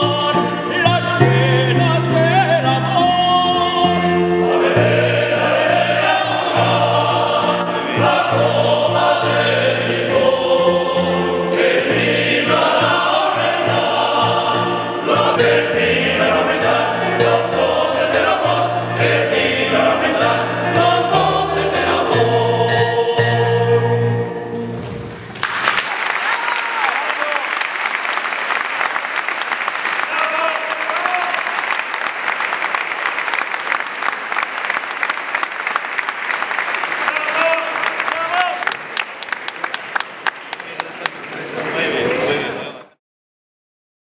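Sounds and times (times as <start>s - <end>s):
male soloist singing: 0.0s - 24.1s
male choir singing: 0.0s - 24.4s.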